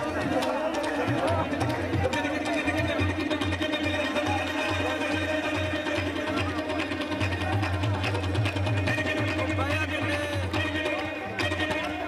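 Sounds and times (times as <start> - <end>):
tabla drumming: 0.0 - 12.0.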